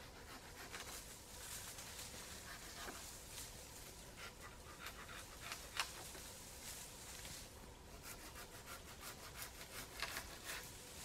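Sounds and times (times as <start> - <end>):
hand saw cutting branch: 0.0 - 1.1, 2.1 - 3.1, 4.2 - 6.2, 8.0 - 10.8.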